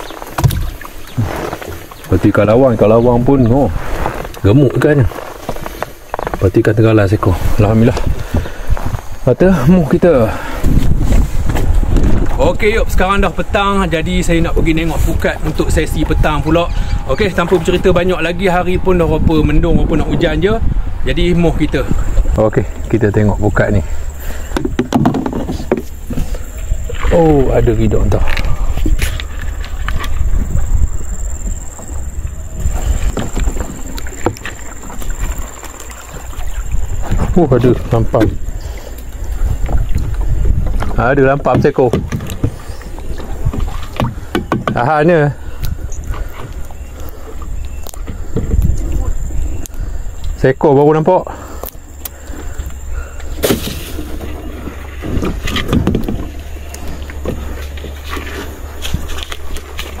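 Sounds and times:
net hauled over boat side: 0.0s - 60.0s
wind rumbling on microphone: 0.0s - 60.0s
sharp knocks: 44.0s - 44.9s.

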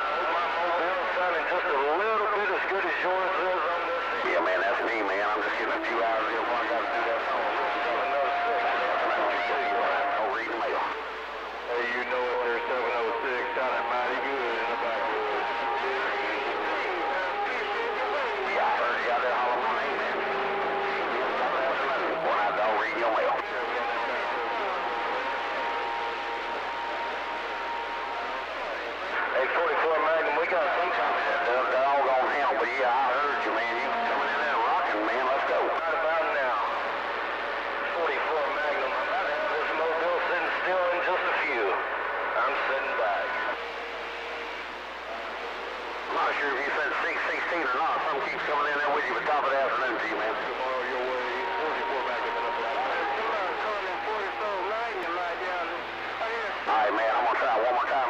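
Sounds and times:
garbled radio voices: 0.0s - 58.0s
radio static: 0.0s - 58.0s
whistling radio tones: 0.0s - 58.0s.

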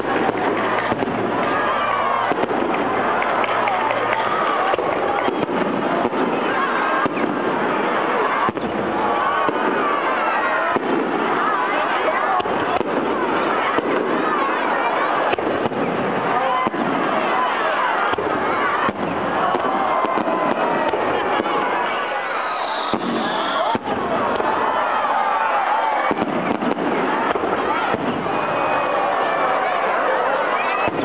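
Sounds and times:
crowd talking and calling: 0.0s - 31.0s
fireworks bangs and crackles: 0.0s - 31.0s.

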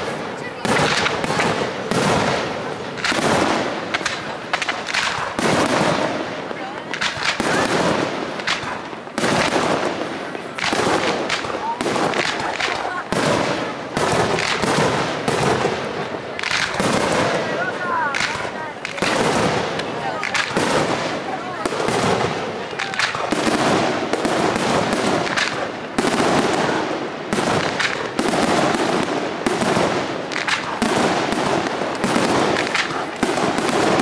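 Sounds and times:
firework shells bursting: 0.0s - 34.0s.

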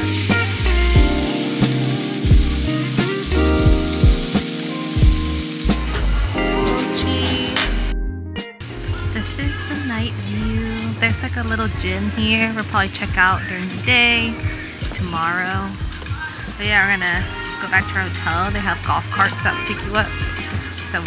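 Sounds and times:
meat sizzling on grill: 0.0s - 6.0s
music with steady beat: 0.0s - 21.0s.

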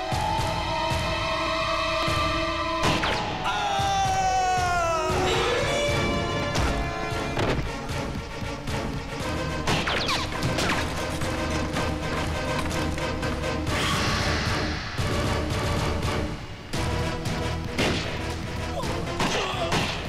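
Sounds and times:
dramatic film score: 0.0s - 20.0s.

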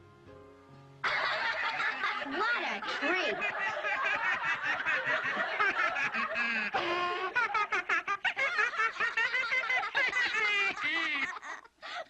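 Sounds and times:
cartoon children laughing: 1.0s - 12.0s.

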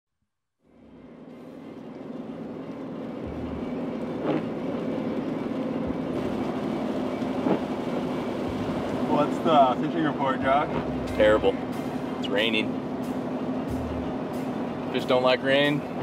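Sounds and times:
car engine hum: 0.6s - 16.0s
road noise on wet road: 0.6s - 16.0s.

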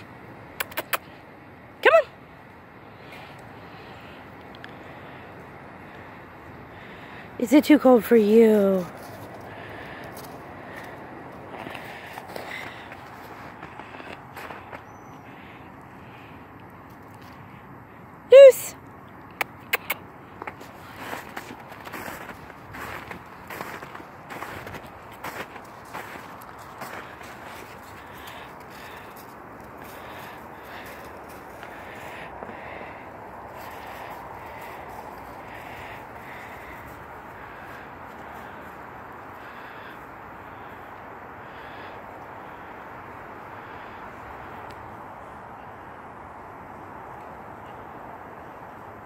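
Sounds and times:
footsteps crunching through snow: 20.5s - 32.1s.

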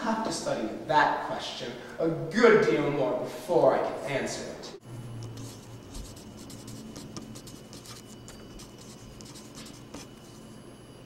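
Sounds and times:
felt-tip pen writing on paper: 5.3s - 10.4s.

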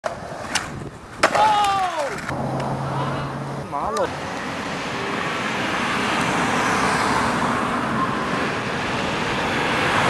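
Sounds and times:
skateboard clacking on concrete: 0.0s - 2.7s
person shouting: 1.3s - 2.2s.

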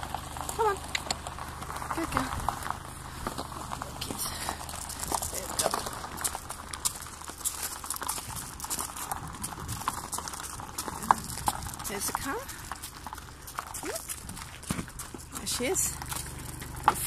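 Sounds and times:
horse hooves clip-clopping on road: 0.0s - 17.0s.

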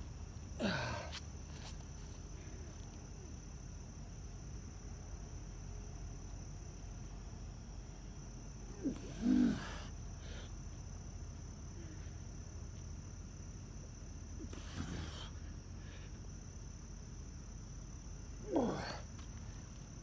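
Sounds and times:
night insects trilling: 0.0s - 20.0s
man grunting: 0.6s - 1.1s, 8.7s - 9.9s, 18.4s - 19.1s.

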